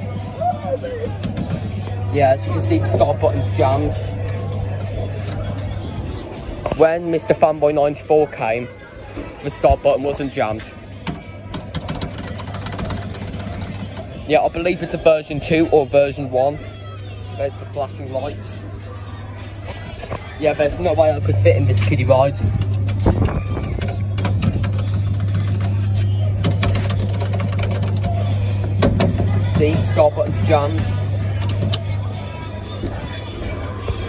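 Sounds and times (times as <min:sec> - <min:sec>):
steady low hum: 0:00.0 - 0:07.6, 0:16.8 - 0:34.0
fast sharp clicks: 0:22.6 - 0:29.4.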